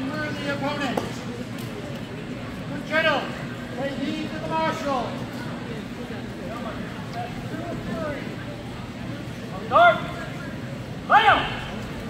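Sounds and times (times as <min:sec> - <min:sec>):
onlookers talking quietly: 0:00.0 - 0:12.0
loud drawn-out shouts: 0:11.0 - 0:11.9.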